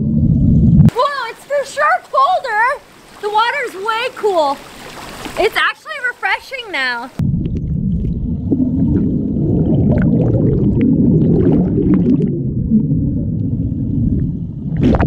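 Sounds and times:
underwater bubbling rumble: 0:00.0 - 0:00.9, 0:07.2 - 0:15.0.

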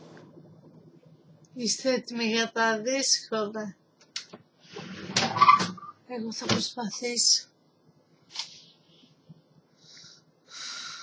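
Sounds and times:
person breathing: 0:08.6 - 0:11.0.

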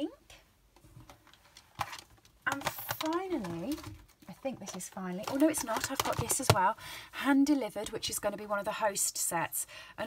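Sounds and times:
packaging rustle: 0:01.0 - 0:06.6.

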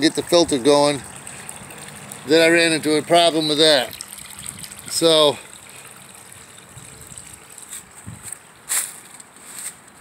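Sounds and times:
water trickling into a pool: 0:00.0 - 0:09.4.

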